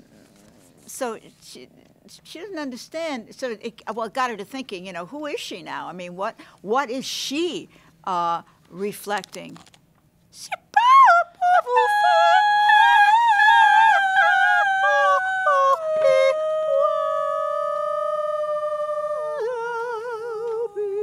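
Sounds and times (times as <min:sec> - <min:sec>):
woman singing high notes with vibrato: 0:10.4 - 0:21.0.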